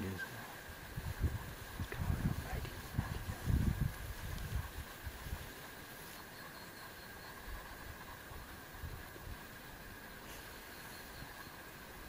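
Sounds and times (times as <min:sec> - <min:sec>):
faint hiss: 0:00.0 - 0:12.0
thin high steady tone: 0:04.8 - 0:12.0.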